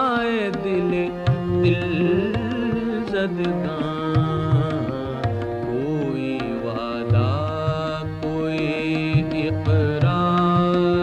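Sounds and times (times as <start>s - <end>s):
tabla drumming: 0.0s - 11.0s.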